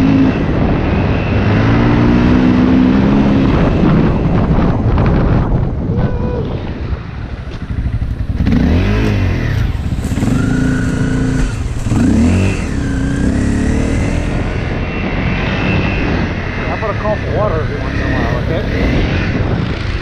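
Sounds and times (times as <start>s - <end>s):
dirt bike engine revving: 0.0s - 4.4s, 7.6s - 20.0s.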